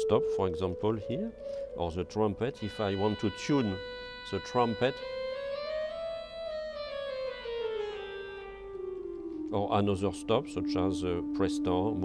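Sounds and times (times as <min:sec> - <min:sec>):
reedy pipe organ tone: 0:00.0 - 0:12.0.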